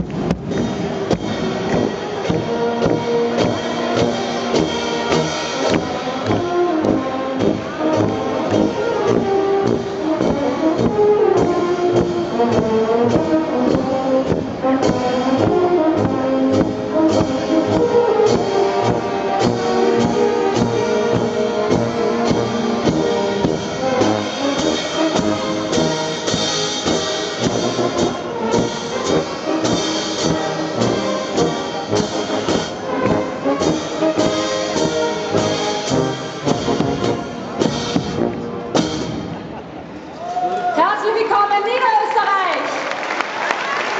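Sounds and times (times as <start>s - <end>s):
tubas: 0.0s - 39.9s
brass band playing: 0.0s - 40.0s.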